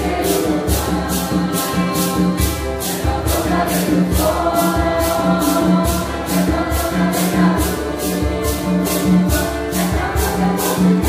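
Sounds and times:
congregation singing a hymn: 0.0 - 11.0
maracas shaken: 0.0 - 11.0.

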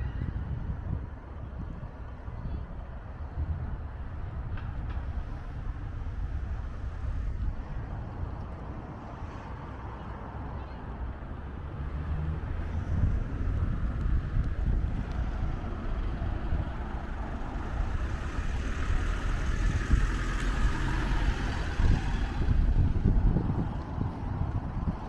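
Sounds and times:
wind rumble on microphone: 0.0 - 25.0
truck driving past: 11.6 - 25.0.

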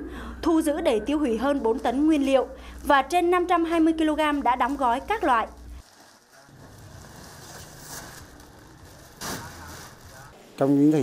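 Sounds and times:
plastic sacks rustling: 2.2 - 10.8.

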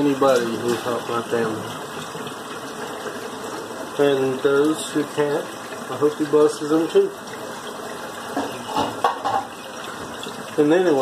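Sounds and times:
tap running into a sink: 0.0 - 11.0
light knocks of dishes: 8.3 - 10.2.

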